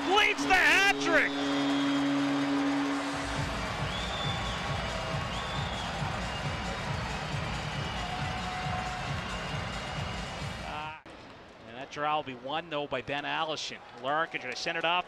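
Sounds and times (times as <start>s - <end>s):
crowd cheering: 0.0s - 10.7s
low horn note: 0.4s - 3.5s
music over sound system: 1.9s - 10.7s.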